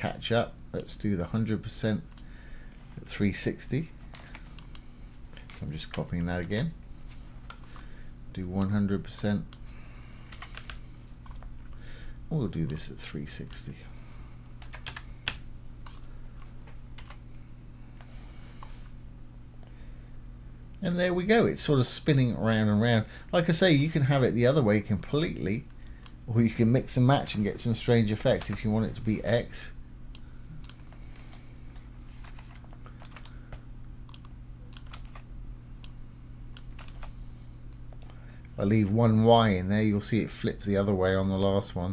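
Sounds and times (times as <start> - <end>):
low steady hum: 0.0 - 41.9
keyboard typing: 10.3 - 11.7, 14.6 - 16.0, 17.0 - 17.2, 32.2 - 33.4, 34.1 - 35.9, 36.5 - 37.2
keyboard and mouse clicks: 34.1 - 35.9.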